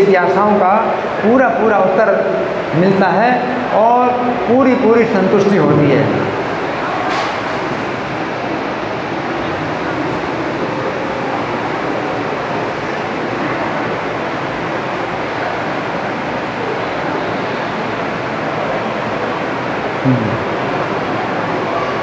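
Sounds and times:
steady rushing noise: 0:00.0 - 0:22.0.

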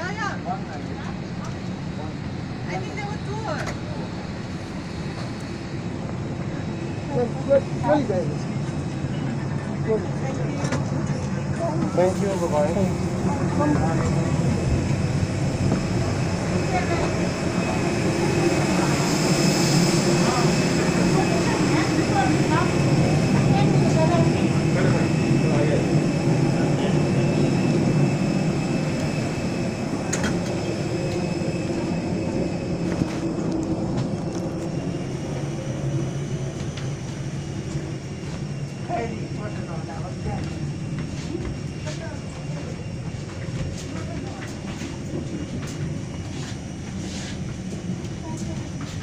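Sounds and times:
jet airliner hum: 0:00.0 - 0:49.0
voices chattering faintly: 0:00.0 - 0:49.0.

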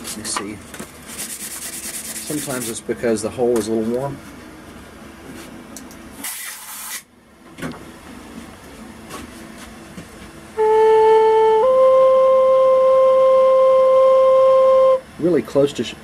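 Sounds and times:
brief hiss: 0:06.2 - 0:07.1
flute playing held note: 0:10.6 - 0:15.1.

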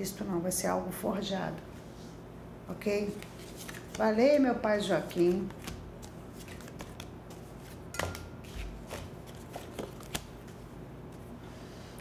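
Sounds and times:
cards rustling and clicking: 0:03.1 - 0:04.1, 0:05.1 - 0:07.8, 0:08.4 - 0:11.2.

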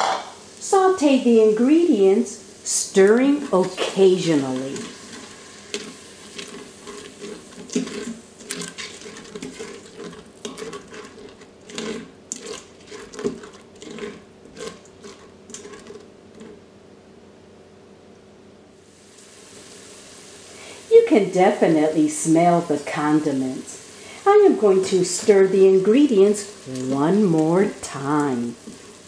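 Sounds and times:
faint sizzle: 0:00.0 - 0:16.7, 0:18.7 - 0:29.0
spatula scraping a metal pot: 0:03.0 - 0:16.6, 0:24.6 - 0:26.3, 0:27.4 - 0:29.0.

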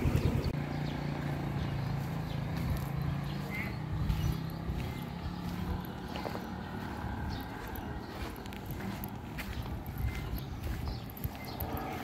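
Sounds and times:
footsteps on asphalt: 0:00.0 - 0:12.0.

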